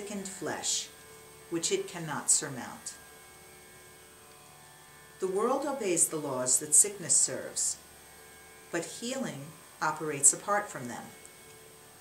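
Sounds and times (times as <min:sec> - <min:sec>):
faint steady hum: 0:00.0 - 0:12.0
thin steady tones: 0:00.0 - 0:12.0.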